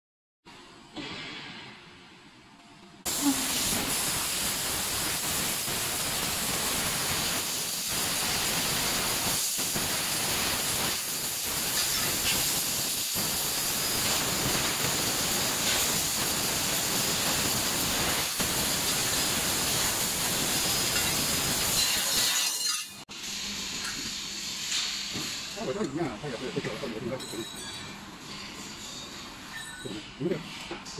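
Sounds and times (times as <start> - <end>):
laser cutter gas jet hiss: 3.1 - 27.4.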